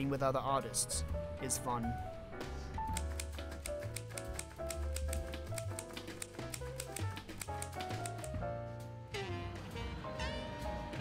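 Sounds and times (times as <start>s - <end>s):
background music: 0.0s - 11.0s
typewriter keys clacking: 2.9s - 8.4s.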